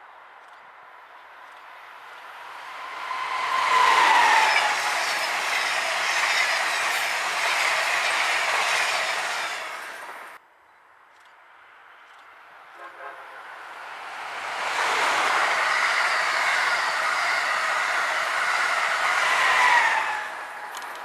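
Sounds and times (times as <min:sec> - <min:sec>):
electric train passing at speed: 0:01.8 - 0:10.4, 0:13.2 - 0:21.0
train whine dropping in pitch: 0:02.8 - 0:07.5.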